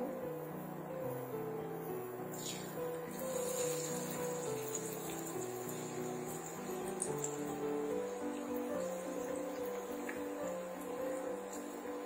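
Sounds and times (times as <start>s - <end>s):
background music: 0.0s - 12.0s
oil sizzling and crackling: 2.3s - 12.0s.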